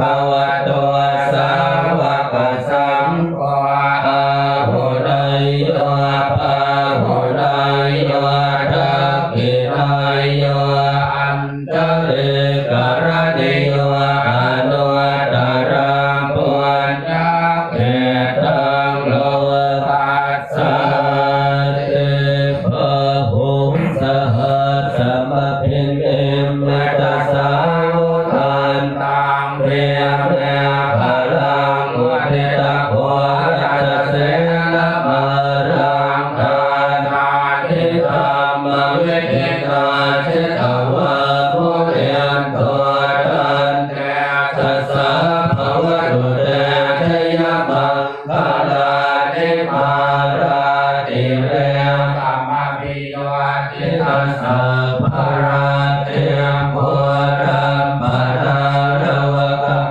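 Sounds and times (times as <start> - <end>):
monks chanting in unison: 0.0 - 59.9.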